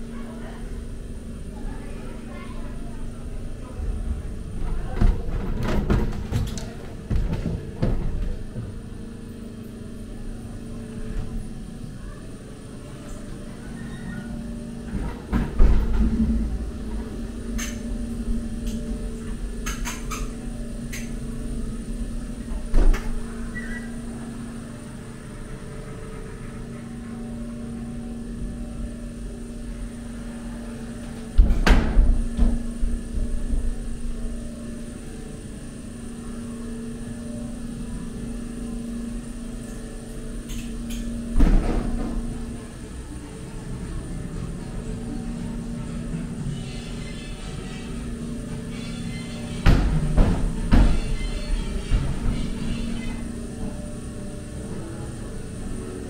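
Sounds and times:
ride car hum and rumble: 0.0 - 56.0.

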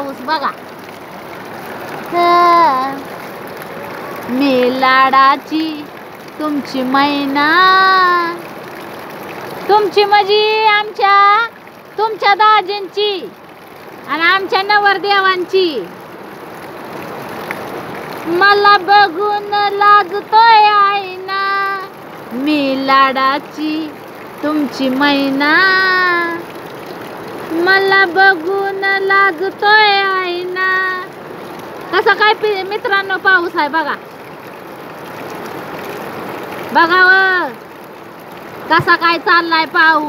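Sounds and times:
heavy rain pouring: 0.0 - 40.0
runoff streaming off roof: 0.0 - 40.0.

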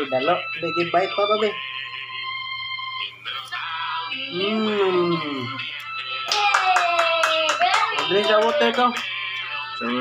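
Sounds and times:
quick rhythmic claps: 5.8 - 9.2.

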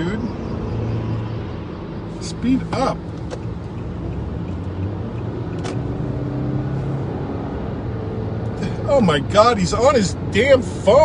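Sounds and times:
car engine hum: 0.0 - 11.0
road noise inside car: 0.0 - 11.0.

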